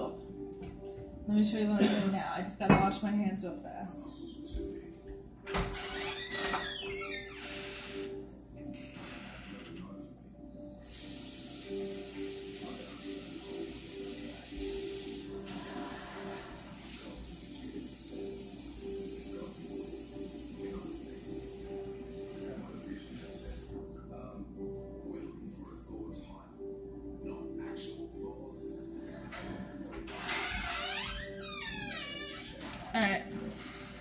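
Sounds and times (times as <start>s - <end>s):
faint music: 0.0s - 34.0s
tap water running: 10.8s - 23.7s.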